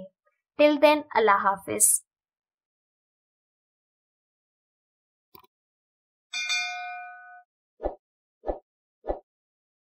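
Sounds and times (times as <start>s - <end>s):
bright bell ding: 6.4s - 7.4s.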